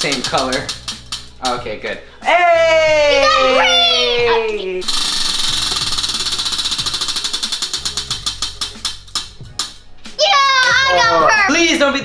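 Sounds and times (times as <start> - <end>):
prize wheel flapper clicking: 0.0 - 1.6, 4.9 - 9.8.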